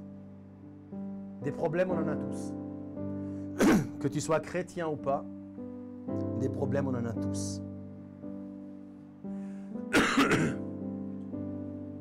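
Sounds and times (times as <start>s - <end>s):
electric keyboard chords: 0.0s - 12.0s
person clearing throat: 3.6s - 4.0s, 9.9s - 10.7s.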